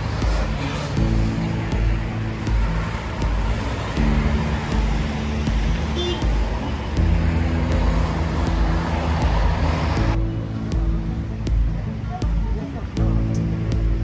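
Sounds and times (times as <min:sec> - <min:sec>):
background music with steady beat: 0:00.0 - 0:14.0
city road traffic: 0:00.0 - 0:14.0.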